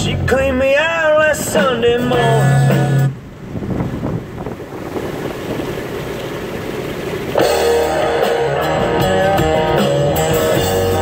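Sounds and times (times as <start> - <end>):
song with singing voice: 0.0 - 3.2
road noise inside moving car: 0.0 - 8.5
guitar music: 1.4 - 3.2, 7.3 - 11.0.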